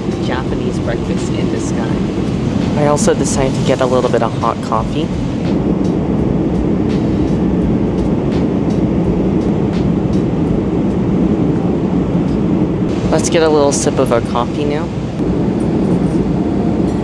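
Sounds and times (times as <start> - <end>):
airflow noise: 0.0 - 17.0
airplane cabin engine roar: 0.0 - 17.0.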